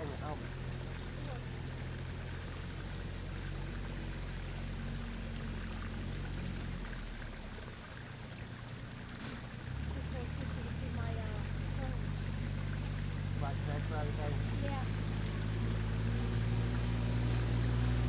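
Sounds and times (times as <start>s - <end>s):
low engine hum: 0.0s - 18.0s.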